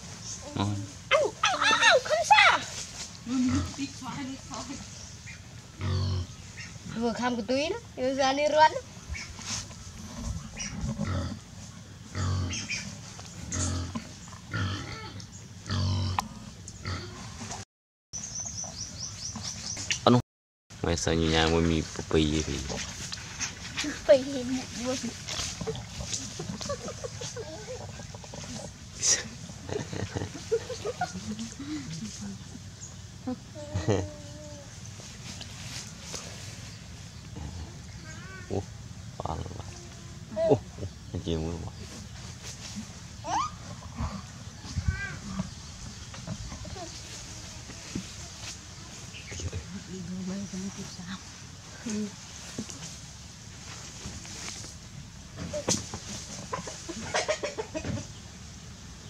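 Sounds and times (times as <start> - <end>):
young animal crying: 37.9 - 38.6.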